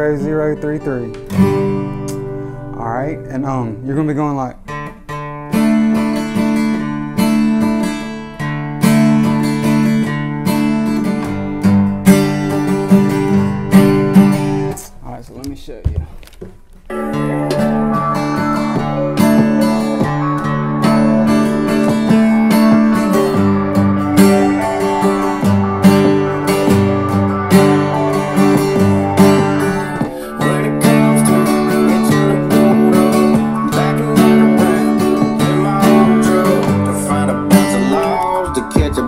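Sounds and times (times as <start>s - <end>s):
acoustic guitar strumming: 0.0s - 15.1s, 16.2s - 39.0s.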